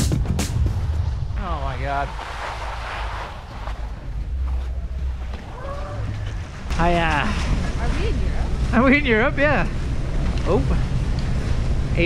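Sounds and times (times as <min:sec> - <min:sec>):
wind buffeting microphone: 0:00.0 - 0:12.0
skis scraping over slushy snow: 0:01.5 - 0:05.6.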